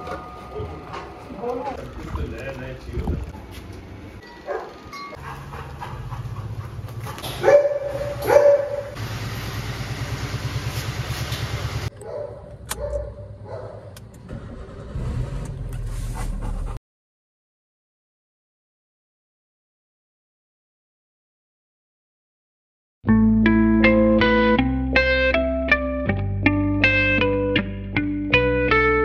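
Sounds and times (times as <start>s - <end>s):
dog barking: 4.4s - 5.7s, 7.1s - 9.0s, 11.9s - 14.0s
car engine running: 5.5s - 16.8s.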